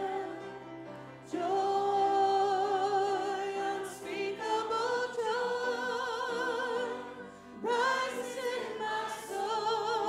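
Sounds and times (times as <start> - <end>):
church choir singing a hymn: 0.0 - 10.0.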